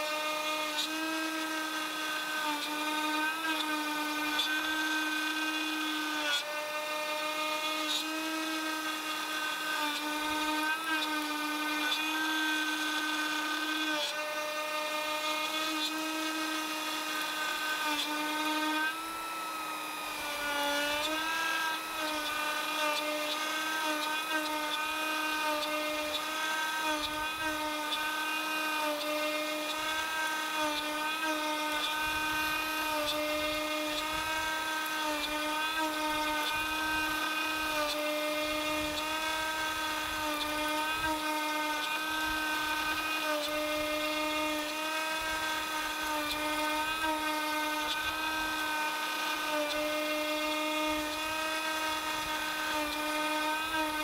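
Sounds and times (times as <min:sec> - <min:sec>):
router milling wood whine: 0:00.0 - 0:54.0.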